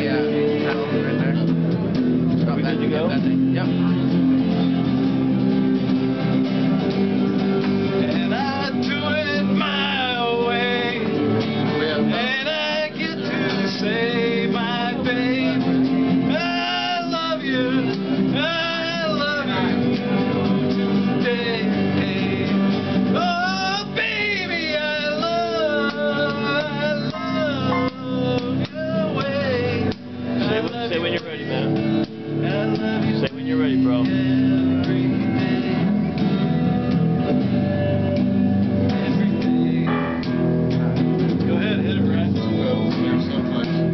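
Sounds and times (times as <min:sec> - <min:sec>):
man singing: 0:00.0 - 0:01.6, 0:08.0 - 0:38.2, 0:38.8 - 0:40.5, 0:41.4 - 0:43.9
electric guitar strumming: 0:00.0 - 0:43.9.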